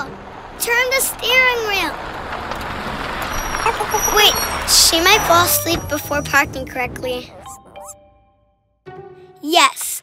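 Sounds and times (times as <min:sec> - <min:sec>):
cartoon van engine: 0:00.0 - 0:07.6.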